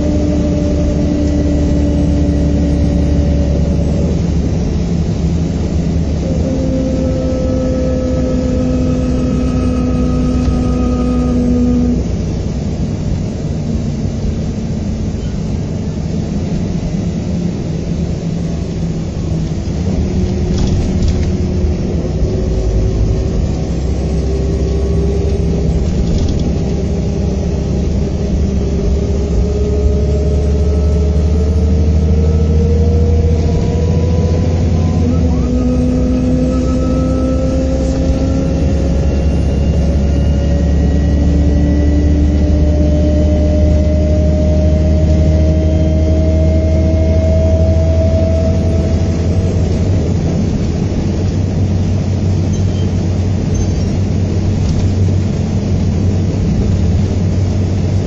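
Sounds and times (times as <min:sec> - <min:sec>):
coach engine low rumble: 0:00.0 - 0:58.0
drivetrain whine: 0:00.0 - 0:58.0.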